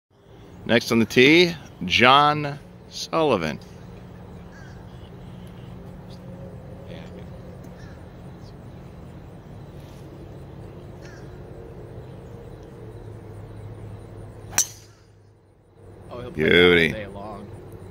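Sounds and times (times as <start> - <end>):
steady low hum: 0.1 - 17.9
golf ball struck by driver: 14.5 - 15.1.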